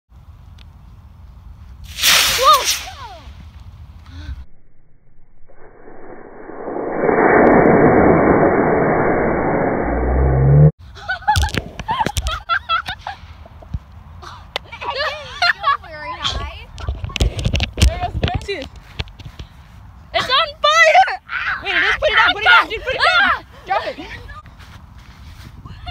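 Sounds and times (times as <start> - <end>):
rocket motor rushing hiss: 1.8 - 3.1
excited voices: 20.1 - 24.5.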